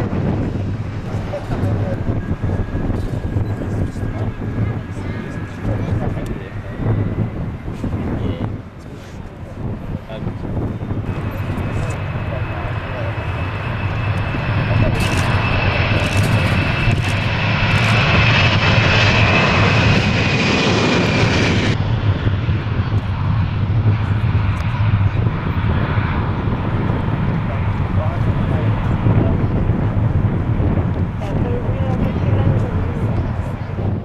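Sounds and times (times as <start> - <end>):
high jet fan whine: 0.0 - 34.0
jet engine roar: 0.0 - 34.0.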